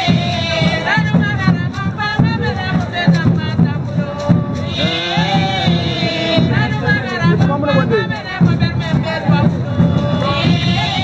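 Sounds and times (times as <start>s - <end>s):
steady low beat: 0.0s - 11.0s
women singing in chorus: 0.0s - 11.0s.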